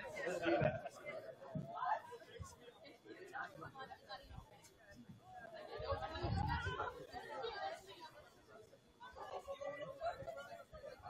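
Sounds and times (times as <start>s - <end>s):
indistinct voices chattering: 0.0s - 11.0s.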